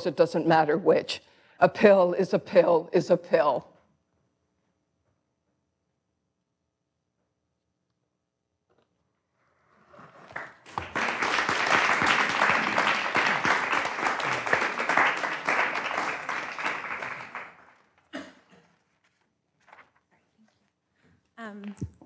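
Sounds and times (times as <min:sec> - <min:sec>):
audience applauding: 0:09.8 - 0:17.9.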